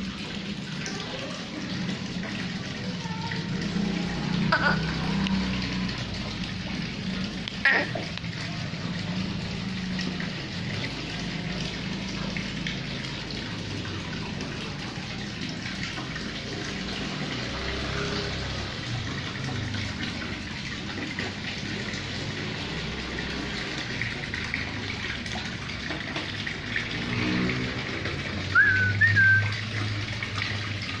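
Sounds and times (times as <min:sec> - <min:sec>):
splashing water: 0:00.0 - 0:31.0
short rising whistle: 0:28.6 - 0:29.5.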